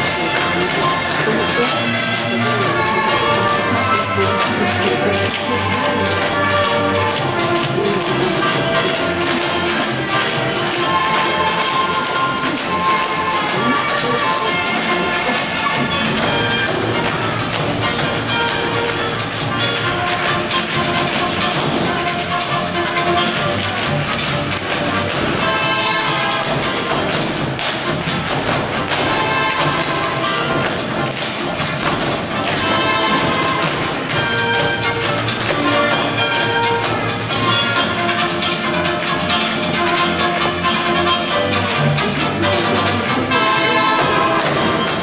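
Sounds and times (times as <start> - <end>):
music: 0.0 - 45.0
tap shoes on stage floor: 0.0 - 45.0.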